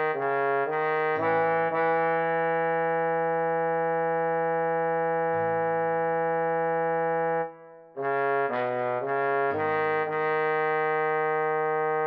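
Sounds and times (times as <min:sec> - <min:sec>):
trombone long note: 0:00.0 - 0:12.0.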